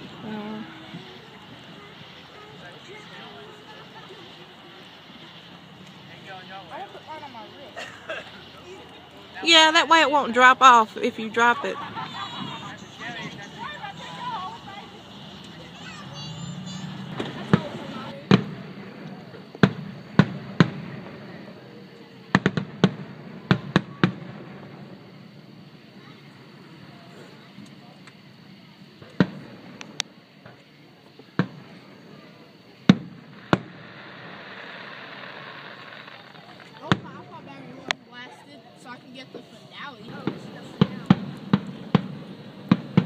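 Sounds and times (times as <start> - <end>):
fireworks bangs: 0.0 - 43.0.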